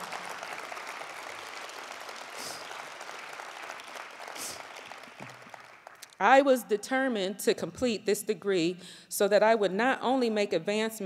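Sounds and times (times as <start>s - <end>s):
audience applauding: 0.0s - 6.2s.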